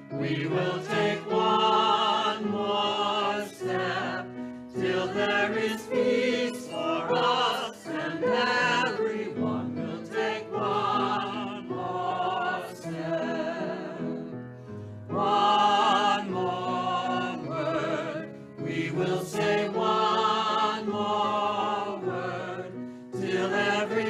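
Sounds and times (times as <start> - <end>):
choir singing a hymn: 0.0 - 14.4, 15.0 - 24.0.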